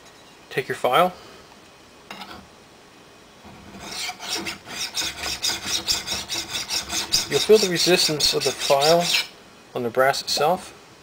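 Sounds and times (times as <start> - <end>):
file rasping on brass: 3.7 - 9.3.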